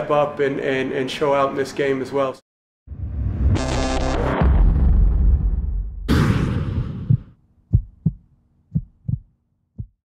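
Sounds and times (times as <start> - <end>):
whoosh and hit: 2.9 - 7.3
low heartbeat-like thuds: 6.1 - 10.0.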